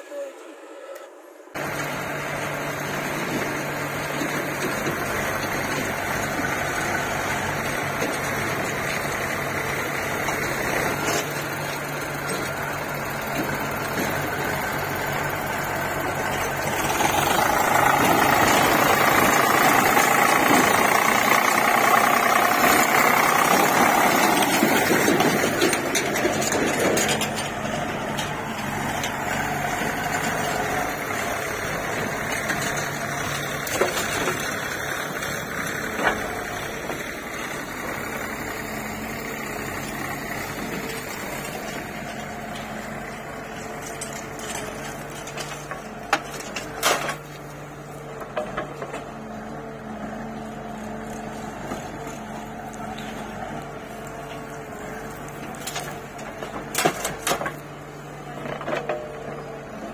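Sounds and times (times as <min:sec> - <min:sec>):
diesel engines running: 0:00.0 - 0:59.9.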